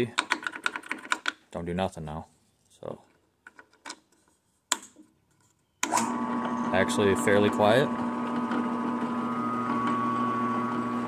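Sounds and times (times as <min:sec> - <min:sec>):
drill press motor humming: 0:05.8 - 0:11.0.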